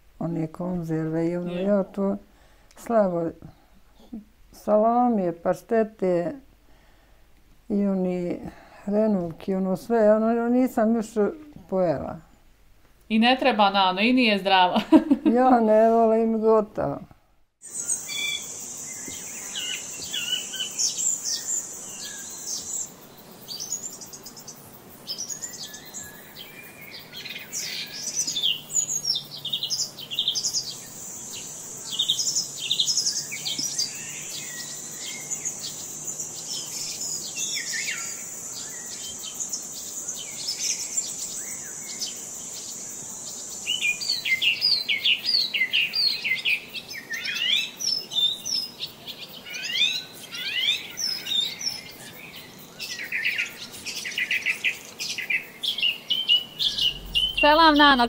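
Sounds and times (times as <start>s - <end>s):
songbirds chirping and trilling: 0.3s - 2.2s, 17.6s - 58.0s
high-pitched buzz: 56.5s - 58.0s.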